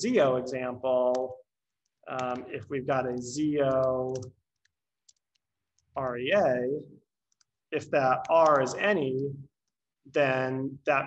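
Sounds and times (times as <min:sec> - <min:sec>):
faint keyboard keystrokes: 0:01.0 - 0:06.1.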